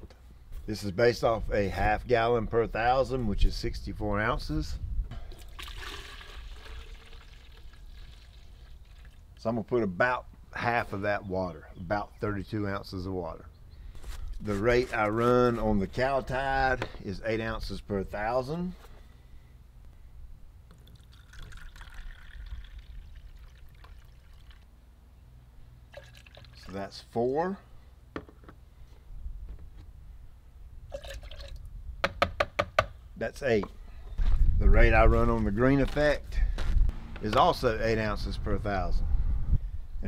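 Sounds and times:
water pouring into plastic cup: 5.3s - 9.4s, 20.7s - 24.7s, 25.9s - 26.8s, 30.9s - 31.7s.

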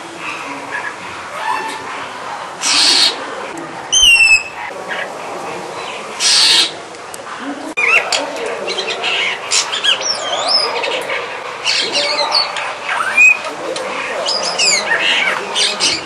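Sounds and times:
starling singing: 2.6s - 3.3s, 3.9s - 5.1s, 5.8s - 6.8s, 7.8s - 16.0s.

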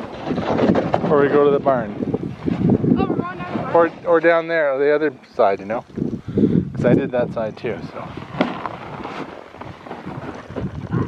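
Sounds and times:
plastic sled scraping over snow: 0.0s - 4.5s, 7.1s - 11.0s
wind noise on microphone: 0.0s - 11.0s.

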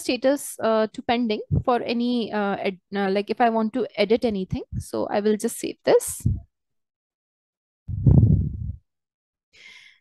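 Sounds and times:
faint breath in: 9.6s - 10.0s.

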